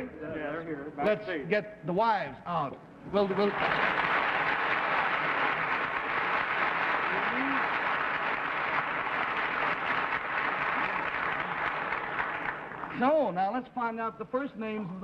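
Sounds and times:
studio audience applauding: 0:03.2 - 0:13.1
faint voice: 0:07.1 - 0:07.7.

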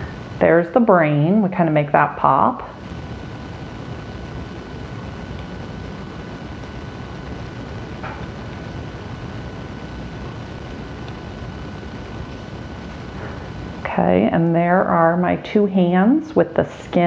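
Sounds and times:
faint steady whine: 0:00.0 - 0:17.0
low background rumble: 0:00.0 - 0:17.0.

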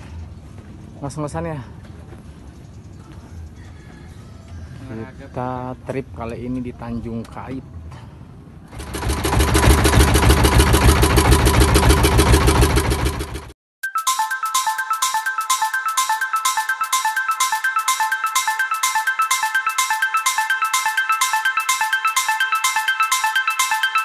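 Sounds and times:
boat engine running: 0:08.7 - 0:13.5
marimba-like melody with beat: 0:13.8 - 0:24.0.

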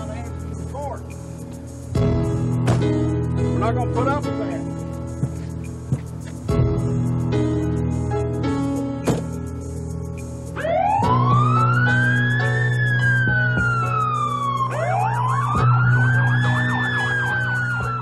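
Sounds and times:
low music bed: 0:00.0 - 0:18.0
police siren wailing: 0:10.6 - 0:18.0
siren yelp: 0:10.6 - 0:18.0.

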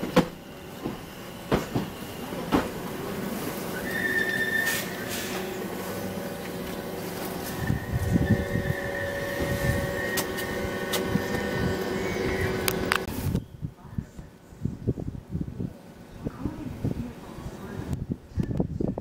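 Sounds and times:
wheels clicking on rail joints: 0:00.0 - 0:13.1
electric train whine: 0:00.0 - 0:13.2
train wheel rumble: 0:00.0 - 0:13.3.

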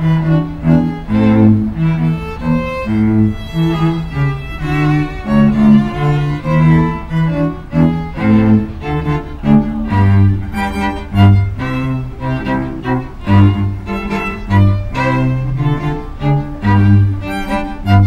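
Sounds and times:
cello playing short low notes: 0:00.0 - 0:18.0
violins playing melody: 0:00.0 - 0:18.0.

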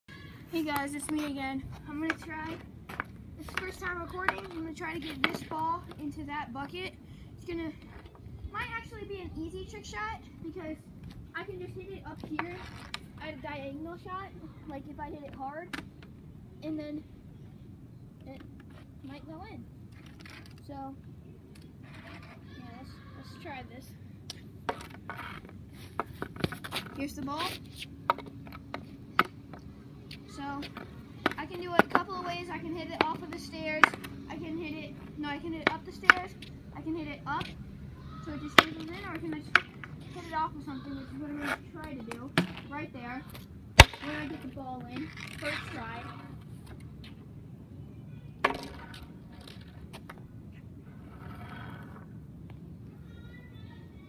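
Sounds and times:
low outdoor rumble: 0:00.0 - 0:54.0
hockey stick and ball knocks: 0:43.8 - 0:44.4.

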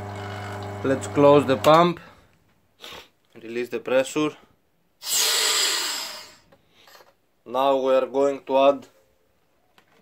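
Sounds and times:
air hissing into vacuum chamber: 0:05.0 - 0:06.5.

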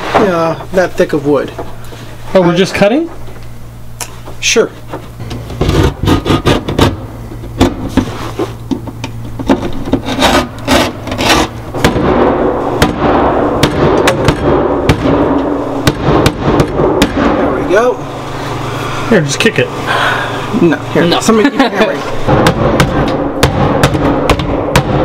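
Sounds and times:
scraping noise: 0:10.0 - 0:11.6
hammer striking wooden panel: 0:22.3 - 0:25.0.

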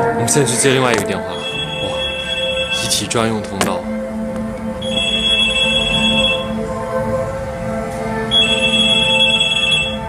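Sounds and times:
background music: 0:00.0 - 0:10.0
telephone ringing: 0:01.3 - 0:03.0, 0:04.8 - 0:06.6, 0:08.3 - 0:10.0.

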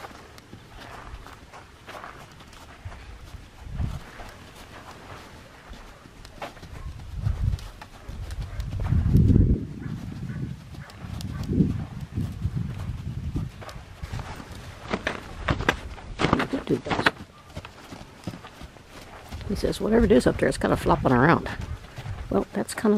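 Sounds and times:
horse hooves thudding on sand: 0:00.0 - 0:22.9.

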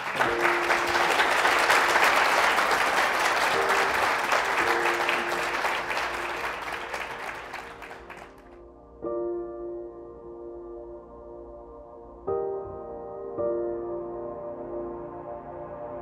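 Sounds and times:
audience applause: 0:00.0 - 0:08.5
soft music of held notes: 0:00.0 - 0:16.0.

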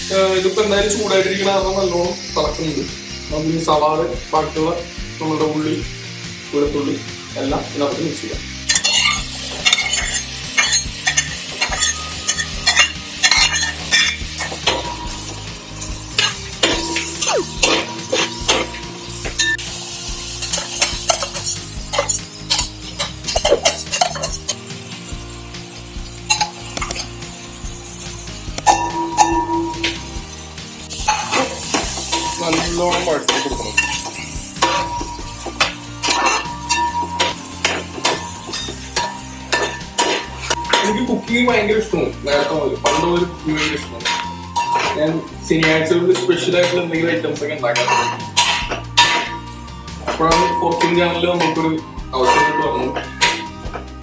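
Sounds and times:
vegetables sizzling in hot oil: 0:00.0 - 0:54.0
steel spatula scraping a pan: 0:08.7 - 0:24.8, 0:30.9 - 0:54.0.

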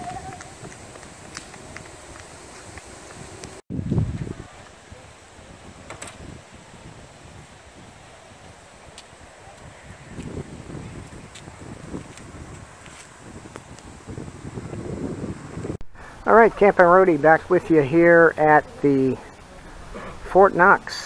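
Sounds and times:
wind buffeting microphone: 0:00.0 - 0:20.9.

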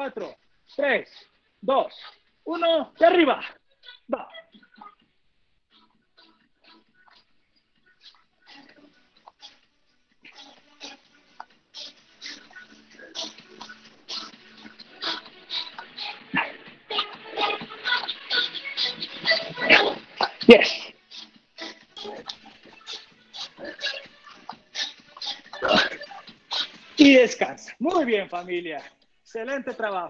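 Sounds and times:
man grunting: 0:25.6 - 0:26.0.

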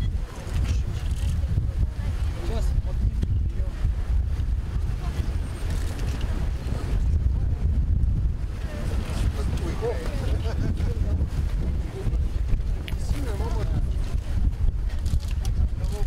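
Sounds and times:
faint voices talking: 0:00.0 - 0:16.0
wind buffeting microphone: 0:00.0 - 0:16.0.

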